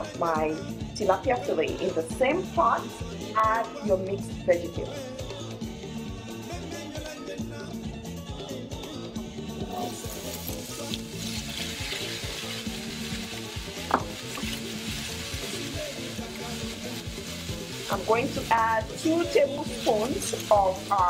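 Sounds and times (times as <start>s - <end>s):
background music: 0.0s - 21.0s
vegetables sizzling in hot oil: 9.7s - 21.0s.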